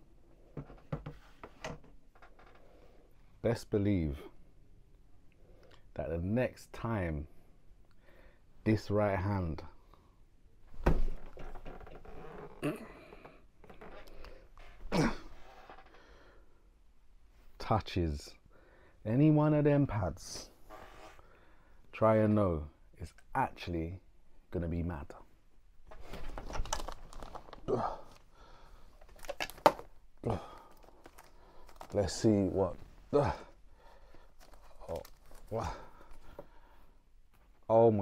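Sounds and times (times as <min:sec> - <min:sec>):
man's wordless vocal sounds: 0:27.6 - 0:28.2, 0:30.2 - 0:30.8, 0:31.9 - 0:33.6, 0:34.8 - 0:36.1.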